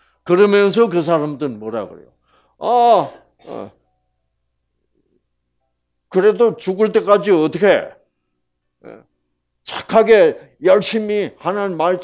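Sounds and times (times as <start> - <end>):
throat clearing: 3.1 - 3.8.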